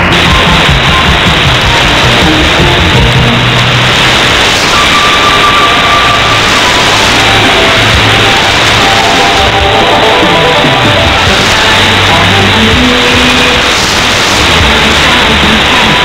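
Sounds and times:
faint radio music: 0.0 - 16.0
static hiss: 0.0 - 16.0.

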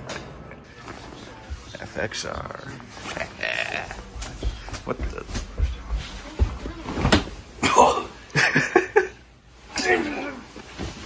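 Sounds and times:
man grunting: 7.6 - 8.2.

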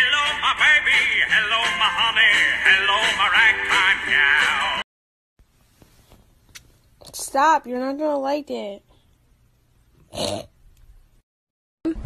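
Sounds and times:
cat retching: 10.0 - 10.6.

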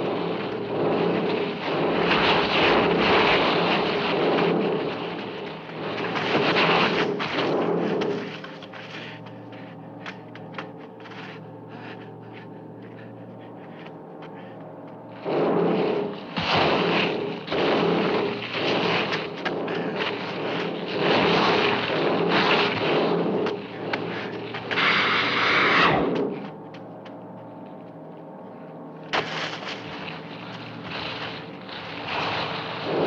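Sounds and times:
low hum: 0.0 - 33.0
monster roars: 15.2 - 26.4.

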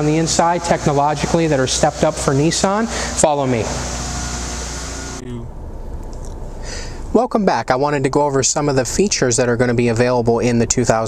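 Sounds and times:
mechanical hiss and hum: 0.0 - 7.4.

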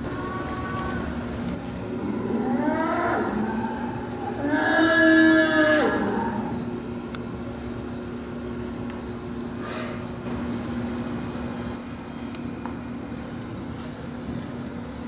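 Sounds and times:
steady low hum: 0.0 - 15.0
cattle mooing: 2.0 - 6.6.

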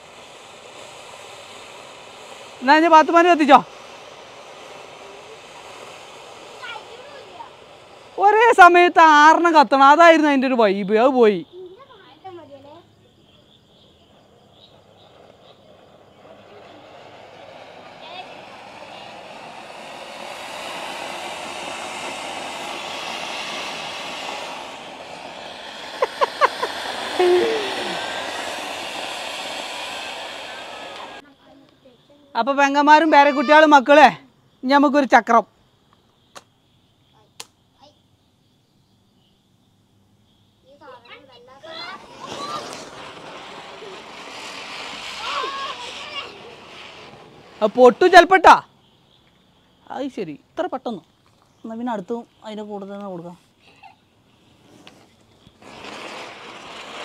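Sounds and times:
fountain fireworks hissing: 0.0 - 36.5, 39.9 - 57.0
sharp pops: 15.1 - 31.8, 35.9 - 36.6, 37.4 - 37.6, 41.6 - 48.6, 54.5 - 57.0
person speaking: 27.2 - 28.0.

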